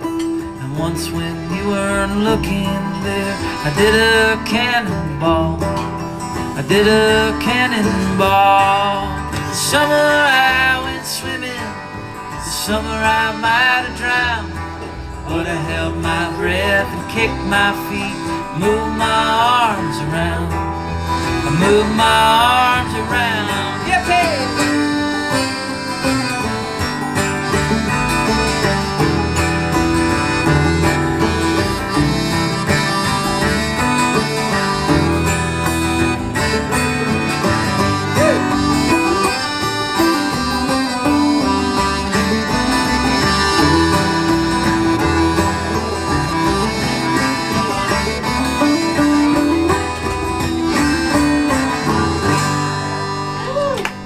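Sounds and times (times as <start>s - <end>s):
accordion: 0.0s - 54.0s
acoustic guitar: 0.0s - 54.0s
banjo: 0.0s - 54.0s
upright bass: 0.0s - 54.0s.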